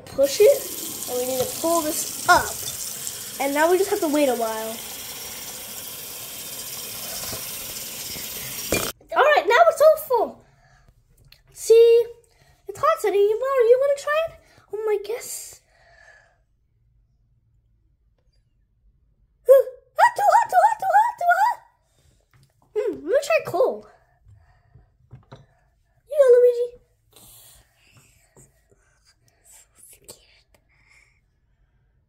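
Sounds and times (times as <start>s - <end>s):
faucet running into sink: 0.1s - 9.0s.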